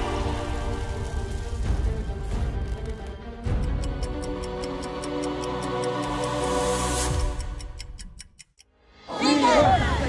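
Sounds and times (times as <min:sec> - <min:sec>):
music track: 0:00.0 - 0:10.0
rapid clock ticking: 0:03.4 - 0:08.7.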